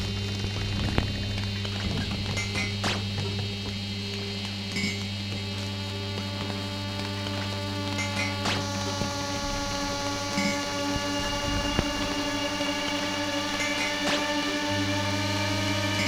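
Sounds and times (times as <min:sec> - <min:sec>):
crackling low rumble: 0:00.0 - 0:16.0
low droning hum: 0:00.0 - 0:16.0
sustained electronic tones: 0:00.0 - 0:16.0.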